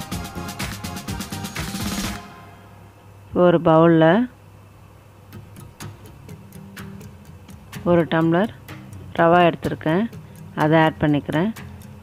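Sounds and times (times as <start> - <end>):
low steady music tones: 0.0 - 12.0
light regular ticking: 5.3 - 12.0.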